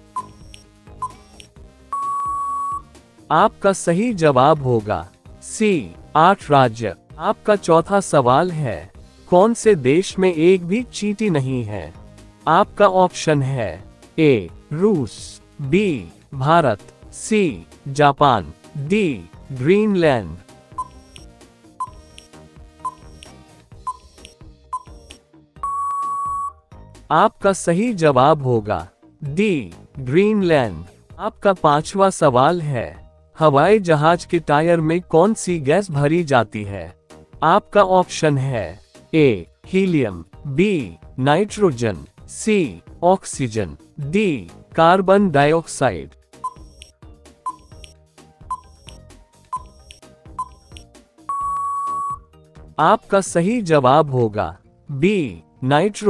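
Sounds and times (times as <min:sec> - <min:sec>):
light background music: 0:00.0 - 0:56.0
short high beeps: 0:00.2 - 0:02.8, 0:20.8 - 0:21.2, 0:22.8 - 0:23.2, 0:25.6 - 0:26.6, 0:46.4 - 0:46.8, 0:47.5 - 0:47.9, 0:48.5 - 0:49.0, 0:49.6 - 0:52.2.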